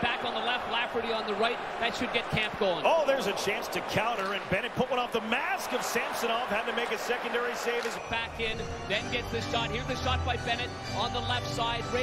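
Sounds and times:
arena crowd noise: 0.0 - 12.0
hockey sticks and puck clacking: 4.1 - 4.5.

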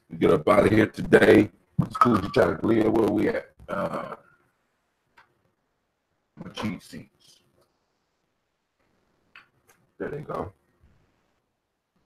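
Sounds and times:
man saying uh: 1.8 - 4.2.

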